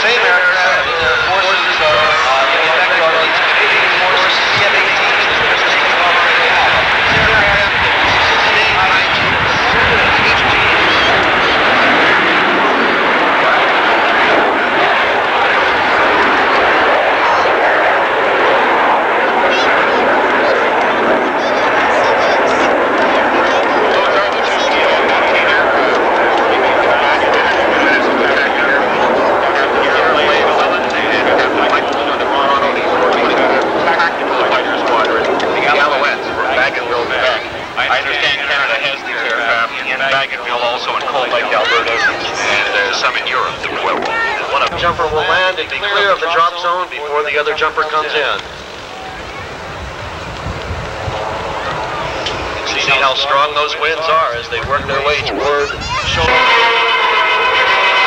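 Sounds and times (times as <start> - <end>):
jet engines roaring: 0.0 - 58.0.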